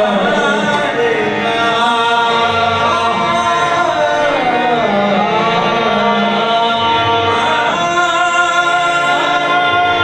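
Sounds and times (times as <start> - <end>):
harmonium chords: 0.0 - 10.0
men singing: 0.0 - 10.0.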